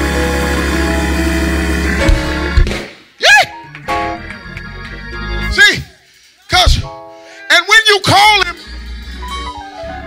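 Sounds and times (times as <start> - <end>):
organ sustained chord: 0.0 - 2.8.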